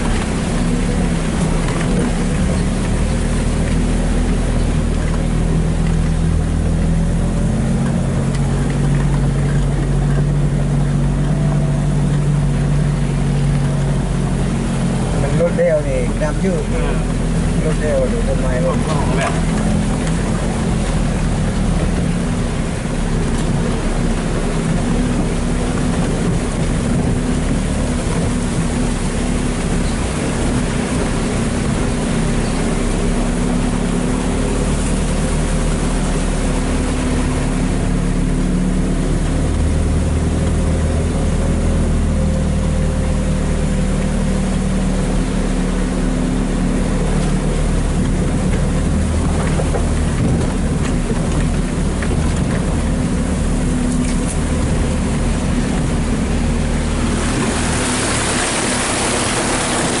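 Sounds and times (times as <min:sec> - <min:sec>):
vehicle engine running: 0:00.0 - 1:00.0
water splashing beside vehicle: 0:00.0 - 1:00.0.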